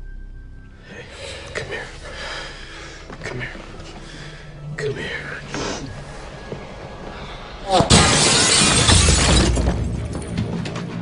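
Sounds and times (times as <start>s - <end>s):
glass shattering: 7.7s - 10.3s.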